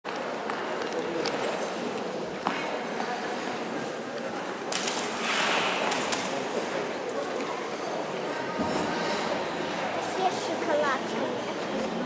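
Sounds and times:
echoing indistinct voices: 0:00.2 - 0:12.0.

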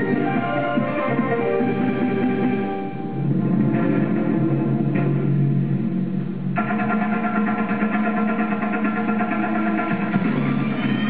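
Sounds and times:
dance music: 0:00.0 - 0:03.2, 0:06.6 - 0:11.0.

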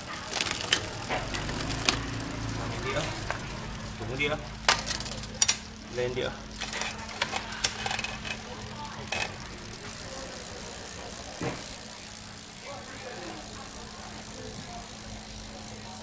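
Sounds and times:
bicycle chain running: 0:00.0 - 0:16.0.

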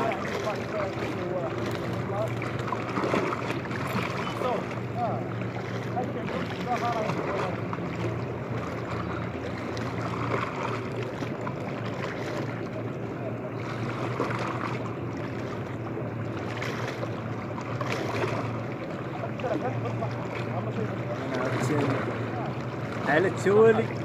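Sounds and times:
faint voices: 0:00.0 - 0:08.2, 0:18.4 - 0:24.0
boat motor droning: 0:00.0 - 0:24.0.

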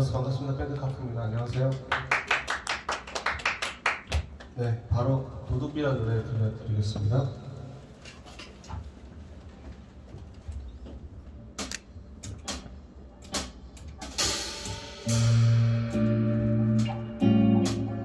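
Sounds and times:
rock band playing loud chords: 0:13.3 - 0:18.0
cymbal wash: 0:13.4 - 0:18.0.

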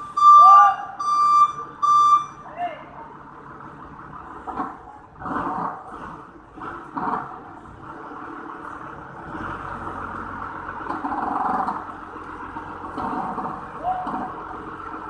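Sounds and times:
forklift engine revving: 0:00.0 - 0:15.0.

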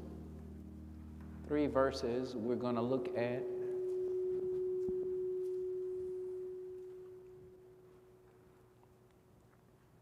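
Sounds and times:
held organ note: 0:00.0 - 0:08.5.

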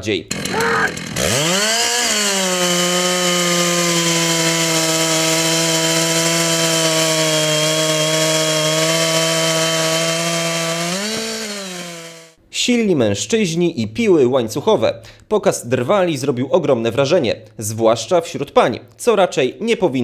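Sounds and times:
chainsaw sawing a log: 0:00.0 - 0:12.4.

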